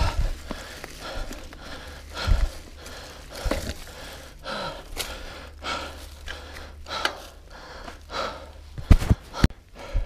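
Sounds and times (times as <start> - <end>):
person panting heavily: 0.0 - 10.0
steady low rumble: 0.0 - 10.0.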